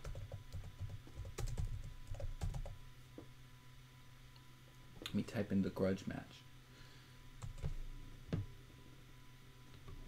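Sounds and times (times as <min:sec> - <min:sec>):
typing on computer keyboard: 0:00.0 - 0:02.8.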